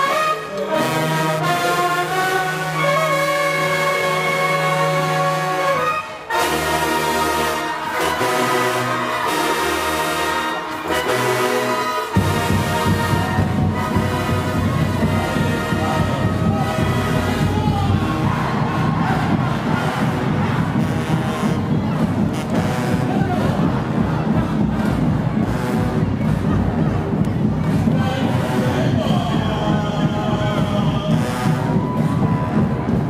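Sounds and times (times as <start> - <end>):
loud bass-heavy band music: 0.0 - 33.0
marching band brass playing: 0.0 - 33.0
crowd cheering: 1.4 - 33.0.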